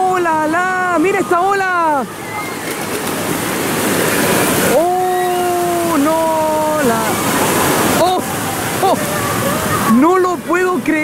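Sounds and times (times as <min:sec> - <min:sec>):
whitewash rushing up shallows: 0:00.7 - 0:11.0
ocean wave breaking: 0:01.6 - 0:11.0.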